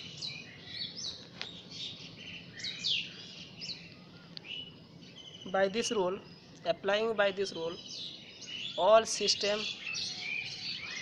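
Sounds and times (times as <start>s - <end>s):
birds chirping: 0.0s - 11.0s.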